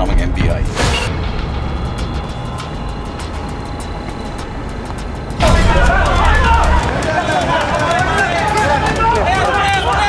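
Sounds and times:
voices shouting outdoors: 5.3 - 10.0.

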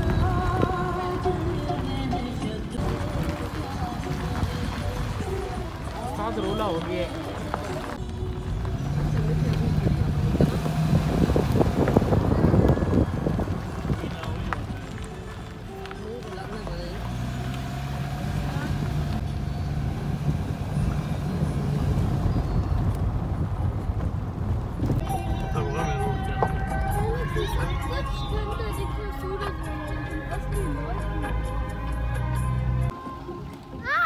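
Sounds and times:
road and engine rumble: 0.0 - 34.0.

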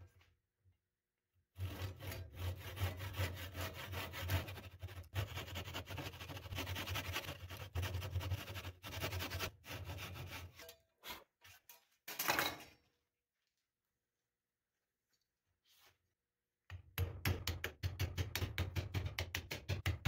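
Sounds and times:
hand saw sawing wood: 1.6 - 11.3.

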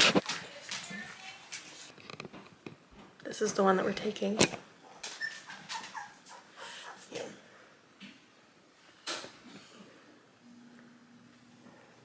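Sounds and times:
puppy whimpering in high squeaks: 5.1 - 6.2.

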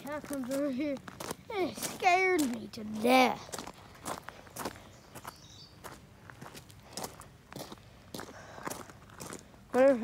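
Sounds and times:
footsteps on gravel and wet grass: 0.0 - 10.0.

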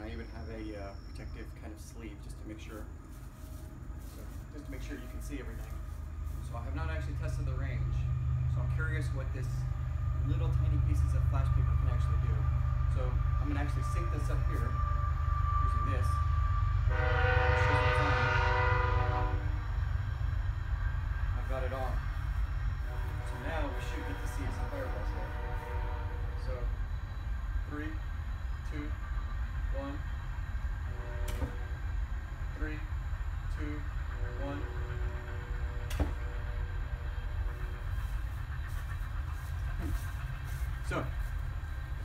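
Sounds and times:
man speaking: 0.0 - 2.9, 4.5 - 5.7, 6.4 - 8.0, 23.3 - 25.3, 28.7 - 29.0
steady low rumble: 0.0 - 42.0.

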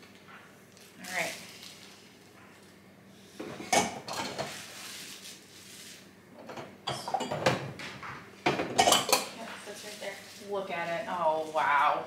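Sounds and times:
kitchen items clinking on countertop: 6.4 - 9.9.

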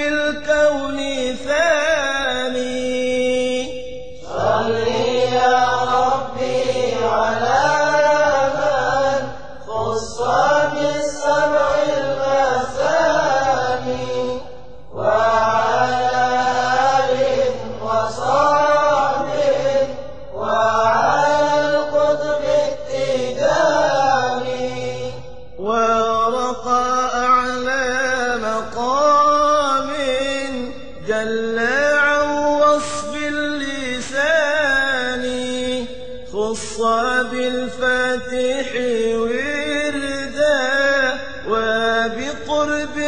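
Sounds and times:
devotional chant with sliding vocals: 0.0 - 43.0.

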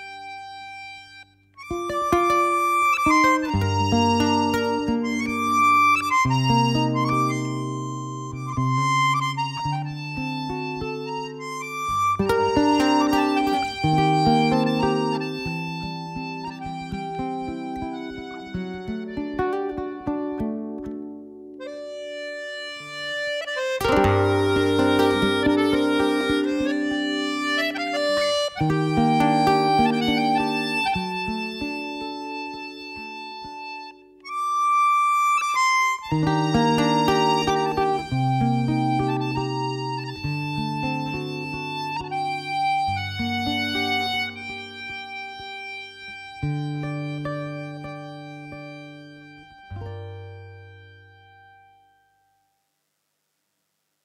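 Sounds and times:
button accordion playing: 0.0 - 20.9, 21.5 - 51.7
acoustic guitar accompaniment: 0.0 - 52.5.

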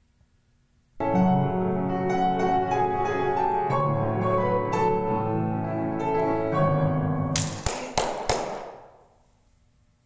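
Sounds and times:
grand piano chords: 1.0 - 8.9.

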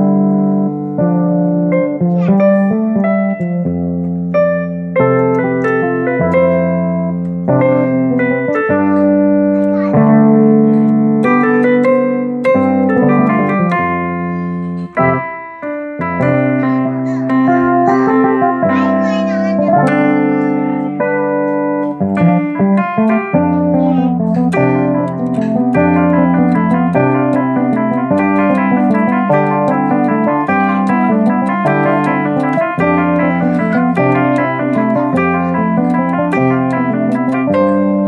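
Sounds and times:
jazzy electronic keyboard music: 0.0 - 38.0
percussion tick: 24.3 - 38.0.

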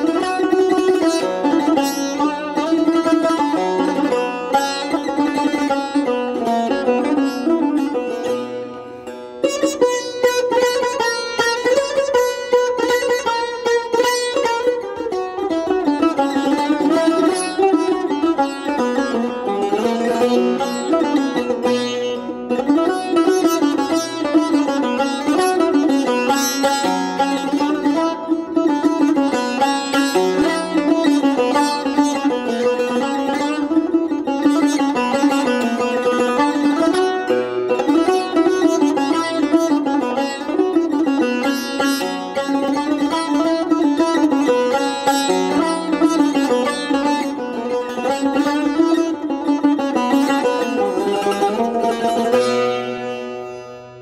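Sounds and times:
plucked lute melody: 0.0 - 54.0.

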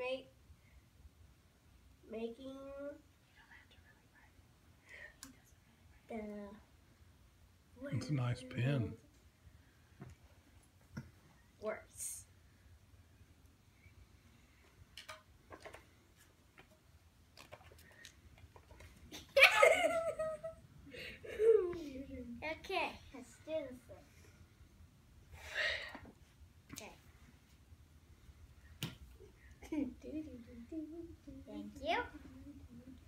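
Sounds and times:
child's voice: 2.1 - 3.1, 6.0 - 6.7, 21.4 - 24.0, 30.0 - 33.0.

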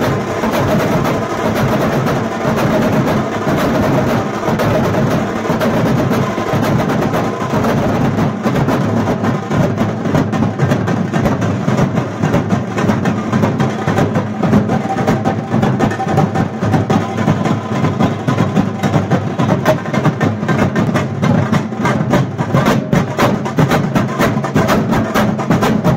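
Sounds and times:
large drums beaten with sticks: 0.0 - 25.9
smaller slung drums: 0.0 - 25.9.

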